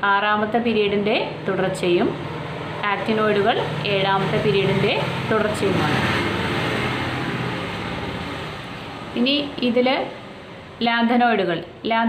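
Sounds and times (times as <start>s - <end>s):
steady rushing noise: 0.8s - 10.8s.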